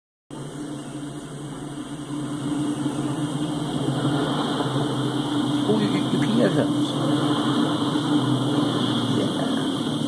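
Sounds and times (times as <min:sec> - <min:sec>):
diesel locomotive engine drone: 0:00.3 - 0:10.0.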